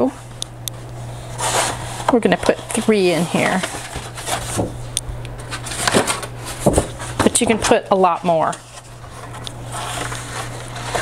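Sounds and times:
heavy paper rustling and sliding: 1.2 - 4.8, 5.4 - 11.0.

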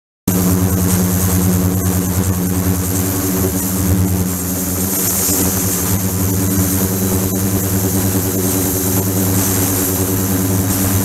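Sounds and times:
ultrasonic tank electrical hum: 0.3 - 11.0.

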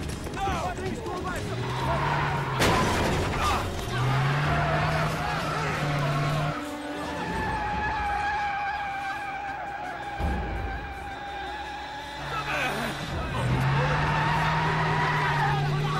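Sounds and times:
held tones of film score: 0.0 - 15.9
tyres screeching: 0.4 - 15.9
vehicle engine noise: 1.0 - 8.2.

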